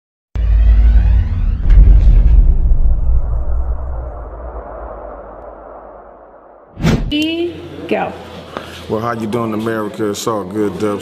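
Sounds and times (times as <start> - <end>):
deep loud rumble: 0.4 - 7.2
sharp hit: 0.4 - 7.2.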